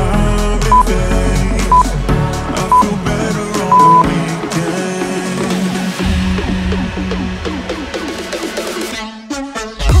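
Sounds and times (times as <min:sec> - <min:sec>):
background music with steady beat: 0:00.0 - 0:10.0
electronic timer beeps: 0:01.7 - 0:01.9, 0:03.7 - 0:04.0.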